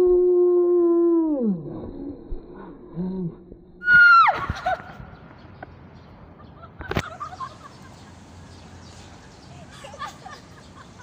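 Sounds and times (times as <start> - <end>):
woman shrieking: 3.8 - 4.6.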